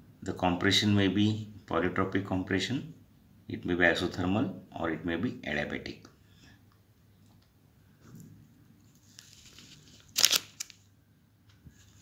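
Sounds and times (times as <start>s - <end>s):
crackling rustle: 8.8s - 10.9s.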